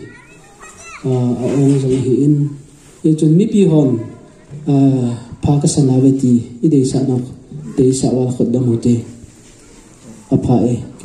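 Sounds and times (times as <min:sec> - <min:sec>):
children calling faintly: 0:00.0 - 0:11.0
man speaking into a microphone: 0:01.0 - 0:09.3, 0:10.3 - 0:11.0.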